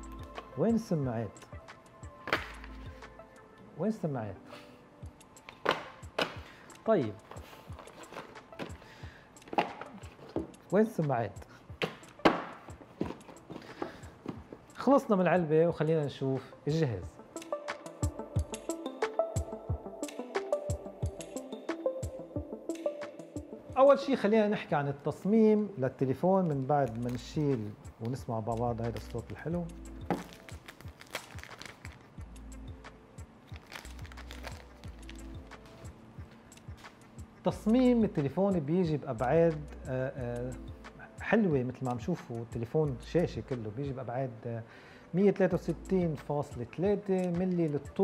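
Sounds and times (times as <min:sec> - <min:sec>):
background music with steady beat: 0:00.0 - 0:48.0
cardboard box knocks and taps: 0:09.6 - 0:10.5, 0:11.8 - 0:14.6, 0:30.1 - 0:30.3
plastic film being peeled: 0:30.1 - 0:32.1, 0:33.5 - 0:35.8.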